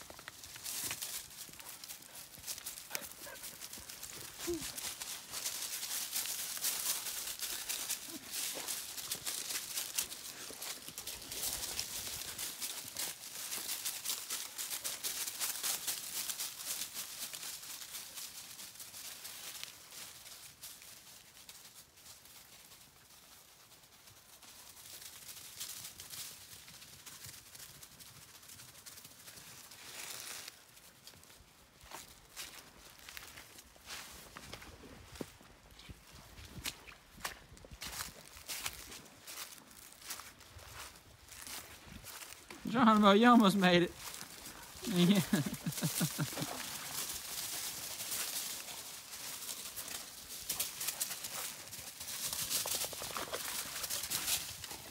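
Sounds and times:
footsteps crunching dry leaves: 0.0 - 22.8, 29.3 - 54.9.

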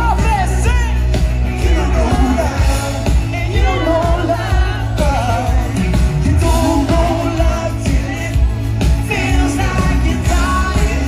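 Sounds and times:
backing vocals: 0.0 - 11.0
drums: 0.0 - 11.0
heavy bass: 0.0 - 11.0
male lead singer: 0.0 - 11.0.

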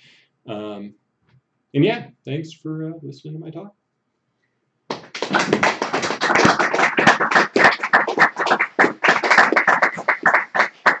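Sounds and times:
small audience applauding: 4.9 - 11.0.

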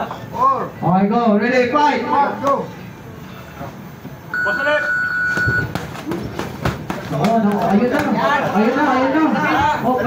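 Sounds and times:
high electronic beep: 4.3 - 5.7.

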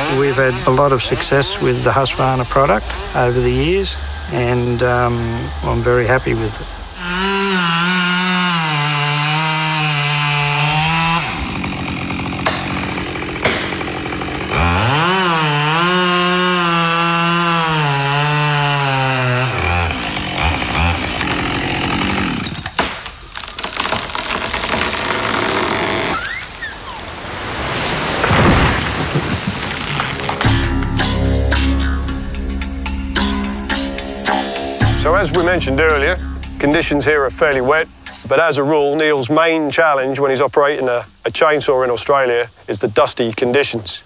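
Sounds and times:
chainsaw cutting tree trunk: 0.0 - 5.8, 6.9 - 27.0.

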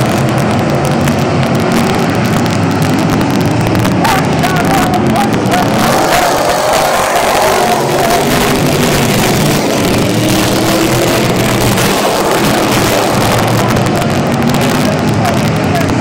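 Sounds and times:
race car engines passing: 0.0 - 16.0.

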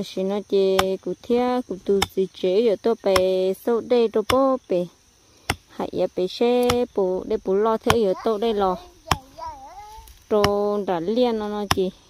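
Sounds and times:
voices speaking: 0.0 - 5.0, 5.6 - 12.0.

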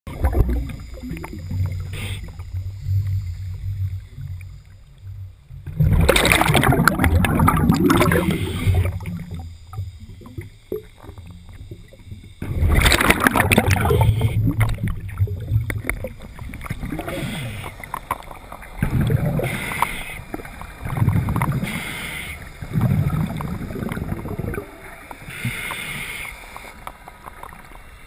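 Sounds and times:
scuba regulator bubbles underwater: 0.1 - 28.0.

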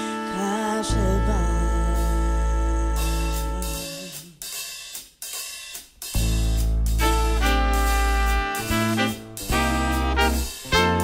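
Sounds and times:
jazz band sustained chord: 0.0 - 4.2, 6.2 - 11.0
drum strokes: 3.0 - 11.0.

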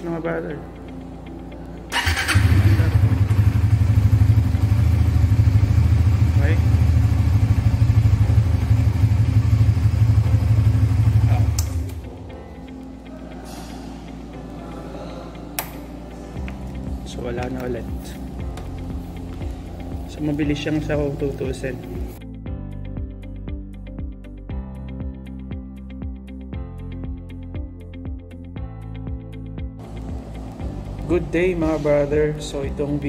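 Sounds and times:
motorcycle engine starting: 1.9 - 12.3
motorcycle engine idling: 1.9 - 12.4
click: 11.6 - 12.0, 15.6 - 15.8.

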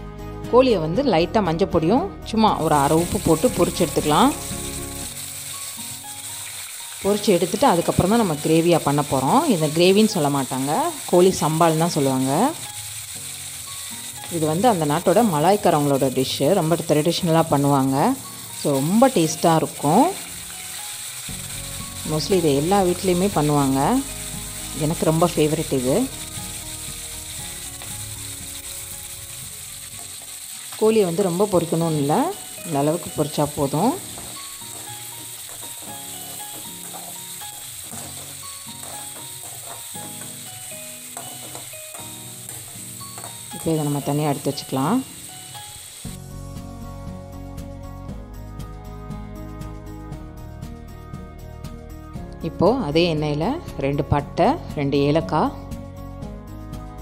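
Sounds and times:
soft background music: 0.0 - 57.0
chicken frying in hot oil: 2.8 - 46.2.

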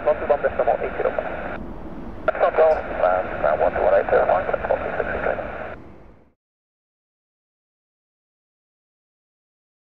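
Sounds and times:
voice over radio: 0.0 - 1.6, 2.3 - 5.8.

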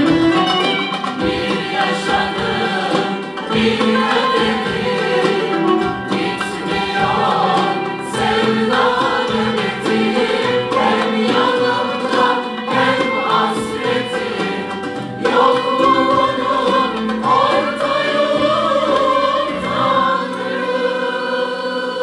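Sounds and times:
mixed choir singing in unison: 0.0 - 22.0
traditional string ensemble: 0.0 - 22.0.

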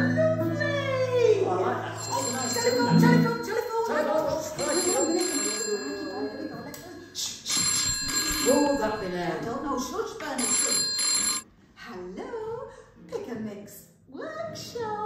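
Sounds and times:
telephone bell ringing: 1.9 - 11.5.

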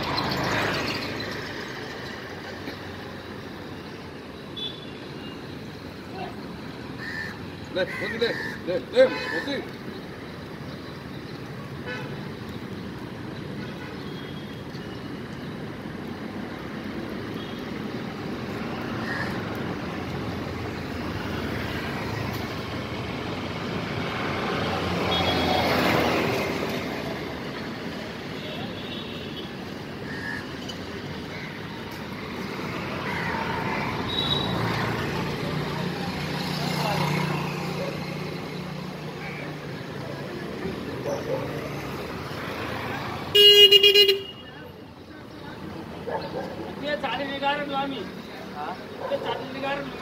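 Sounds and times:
motor vehicles passing: 0.0 - 4.4, 15.0 - 29.0, 29.6 - 50.0.

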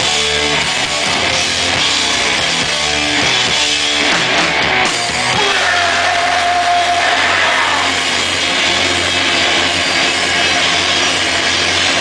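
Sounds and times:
distorted guitars and bass droning: 0.0 - 12.0
guitar feedback tone: 0.0 - 12.0.

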